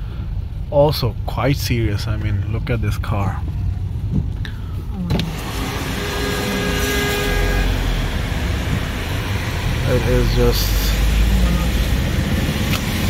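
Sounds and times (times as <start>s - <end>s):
passing traffic: 0.0s - 13.0s
tyres on wet road: 0.0s - 13.0s.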